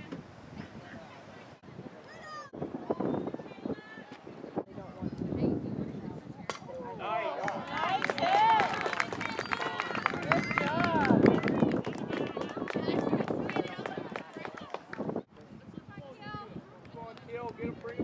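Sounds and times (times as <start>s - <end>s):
crowd cheering and yelling: 7.0s - 15.0s
scattered clapping: 7.4s - 15.2s.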